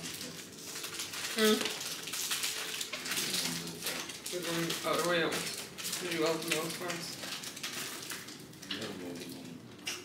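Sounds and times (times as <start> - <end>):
kitchen clicking and clatter: 0.0 - 10.0.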